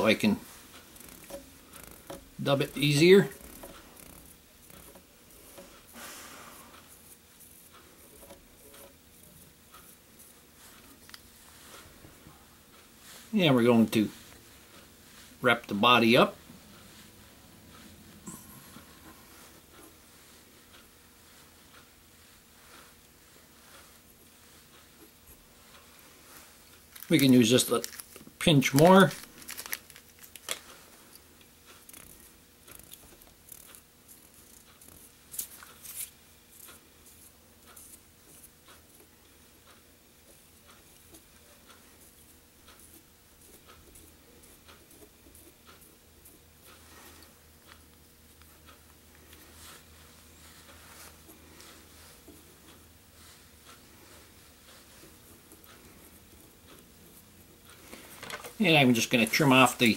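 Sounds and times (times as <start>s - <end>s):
hands rustling fur and thread: 0.0s - 31.2s, 40.2s - 59.9s
low steady hum: 0.0s - 59.9s.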